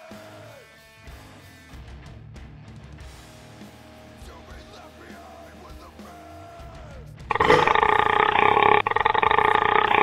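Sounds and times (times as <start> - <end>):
man belching loudly: 7.3 - 10.0.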